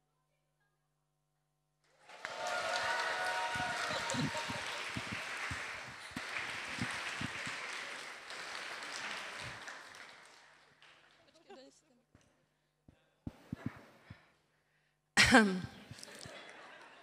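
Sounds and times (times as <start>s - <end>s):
audience applauding and cheering: 1.9s - 11.3s.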